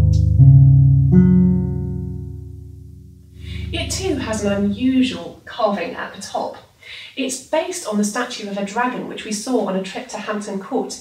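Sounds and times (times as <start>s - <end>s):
bass viol string plucked: 0.0s - 4.8s.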